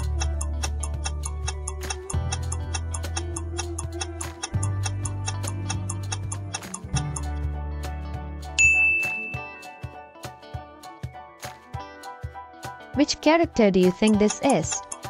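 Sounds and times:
clock-like ticking: 0.0s - 7.4s, 13.7s - 15.0s
looping bass line: 0.0s - 7.4s
bright chime: 8.6s - 9.9s.

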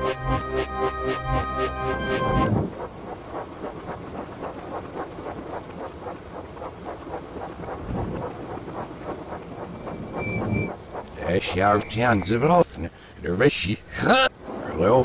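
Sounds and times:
stormy wind: 2.0s - 15.0s.

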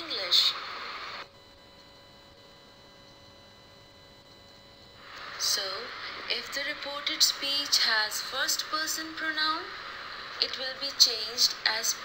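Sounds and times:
faint steady hiss: 0.0s - 1.8s, 4.8s - 12.0s
high whining tones: 0.0s - 12.0s.

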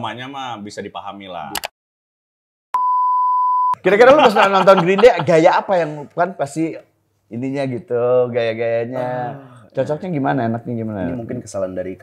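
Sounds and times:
electronic beep: 2.8s - 3.8s
speech: 3.8s - 12.0s.

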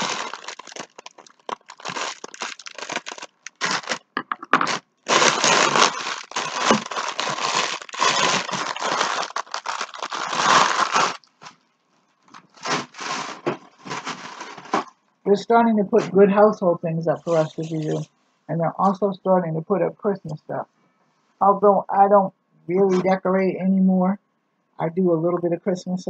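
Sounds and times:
plastic bag crinkling: 0.0s - 14.9s.

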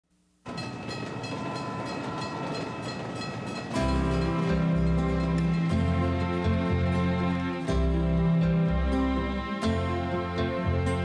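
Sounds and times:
crossing bell ringing: 0.4s - 8.4s
freight train rumbling: 0.5s - 11.0s
music: 0.5s - 11.0s.

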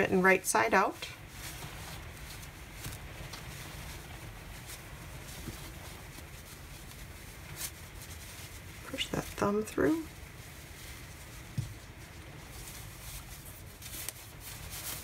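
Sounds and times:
steady low hum: 0.0s - 15.0s
yarn mitten rustling: 0.0s - 15.0s.

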